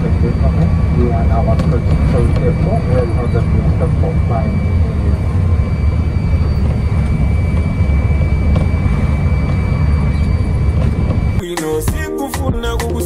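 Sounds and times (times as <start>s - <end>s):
coach engine and road rumble: 0.0s - 11.4s.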